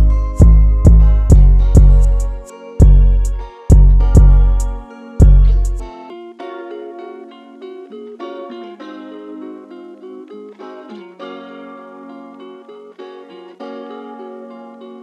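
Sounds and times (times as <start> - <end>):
plucked guitar melody: 0.0 - 15.0.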